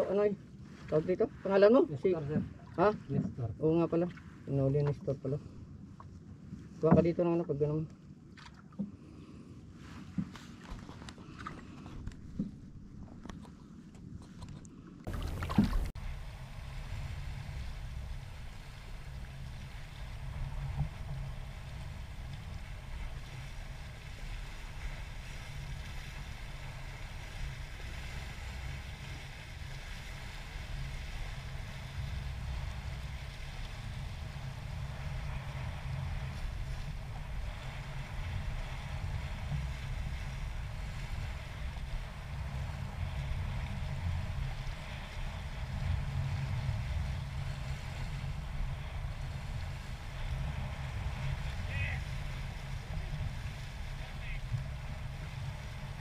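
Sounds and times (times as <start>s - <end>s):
waves washing on rocky shore: 15.0s - 56.0s
wind buffeting microphone: 15.0s - 56.0s.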